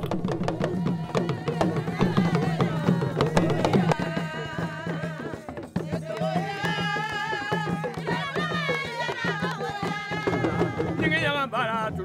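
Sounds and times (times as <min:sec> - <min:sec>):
hand drums beaten quickly: 0:00.0 - 0:12.0
voices singing wavering: 0:00.4 - 0:11.3.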